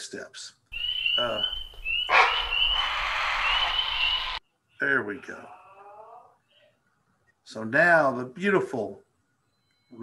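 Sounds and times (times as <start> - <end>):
heron call high whistle: 0.8 - 4.4.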